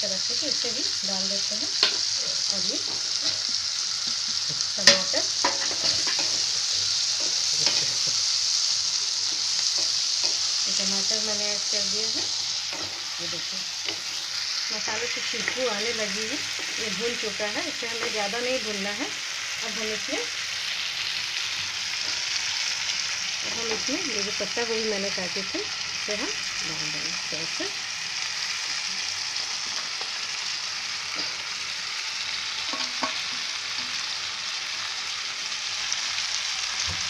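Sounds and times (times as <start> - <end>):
vegetables sizzling in oil: 0.0 - 37.0.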